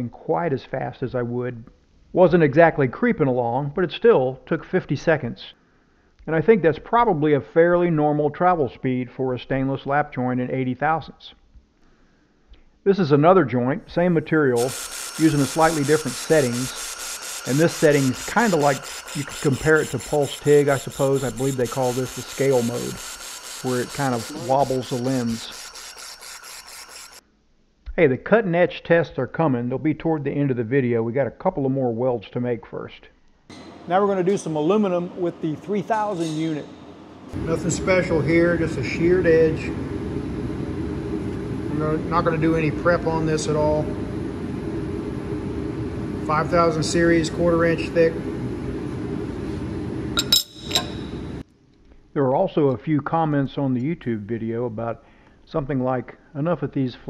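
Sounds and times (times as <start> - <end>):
low shop hum: 13.5 - 27.2, 33.5 - 51.5
laser welder hissing and crackling: 14.0 - 27.2
metal plate clinking on table: 50.2 - 51.1.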